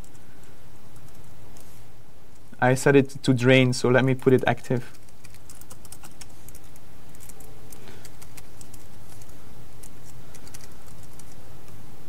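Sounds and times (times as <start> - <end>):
computer keyboard typing: 0.0 - 0.2, 0.9 - 1.3, 4.1 - 11.4.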